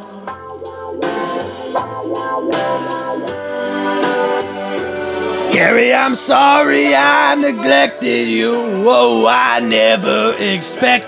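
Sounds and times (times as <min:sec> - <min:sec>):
instrumental slow ballad: 0:00.0 - 0:09.0.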